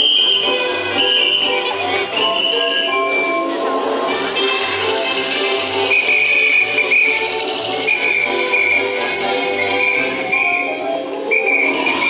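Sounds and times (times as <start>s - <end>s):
high held melody: 0.0s - 12.0s.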